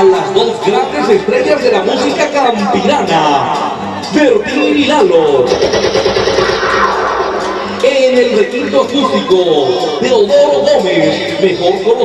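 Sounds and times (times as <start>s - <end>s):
voice over loudspeaker: 0.0s - 5.6s, 7.6s - 12.0s
crowd noise: 0.0s - 12.0s.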